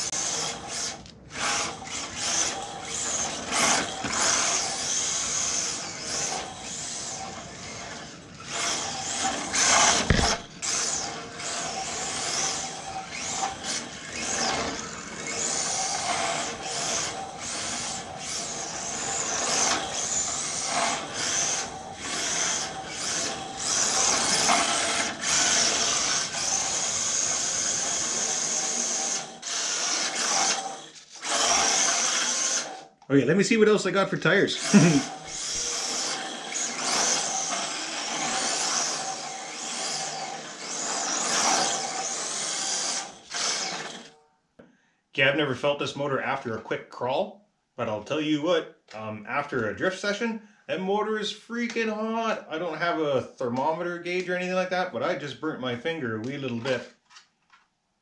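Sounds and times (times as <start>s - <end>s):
tyres scrubbing on concrete: 0.0s - 32.8s
electric motor whining: 0.0s - 32.9s, 34.6s - 44.1s
sharp thump: 10.0s - 10.5s.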